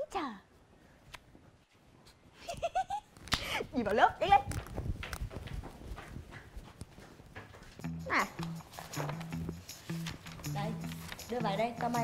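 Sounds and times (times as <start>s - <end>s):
footsteps on hard floor: 4.5s - 10.2s.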